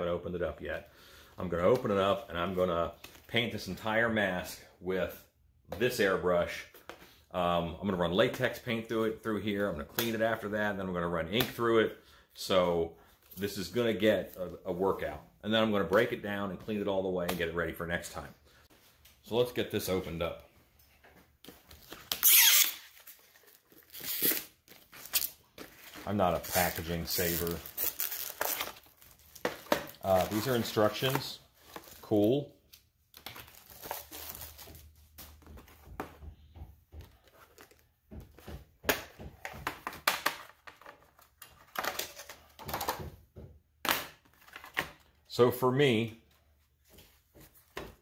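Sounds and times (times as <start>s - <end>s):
plastic crinkling: 21.7s - 32.4s
plastic wrap ripping: 22.0s - 25.4s, 26.0s - 32.2s.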